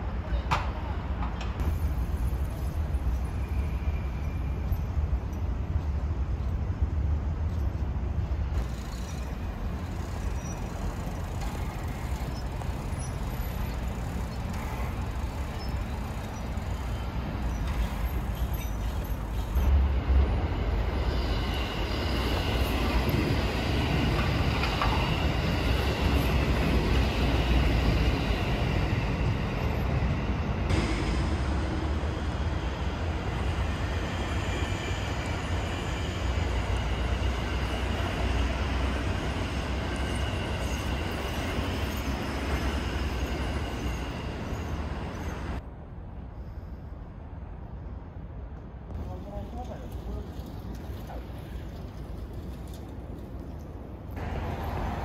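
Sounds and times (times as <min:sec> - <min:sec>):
train wheels rumbling on rail: 0:00.0 - 0:45.7, 0:48.2 - 0:55.0.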